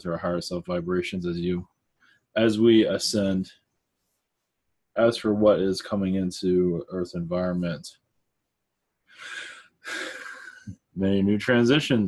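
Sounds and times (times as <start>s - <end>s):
man breathing: 9.1s - 10.7s.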